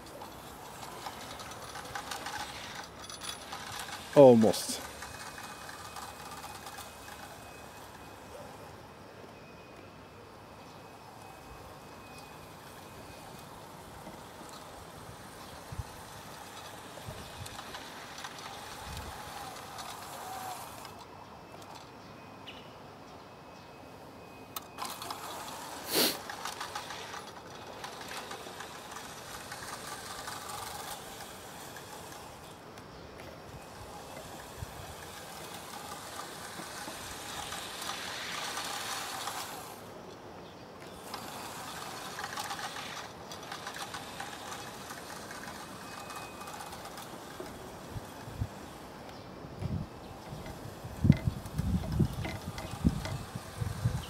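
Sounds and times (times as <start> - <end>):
model train motor whirring: 0.0 - 9.0, 11.0 - 21.9, 24.6 - 40.2, 40.8 - 54.0.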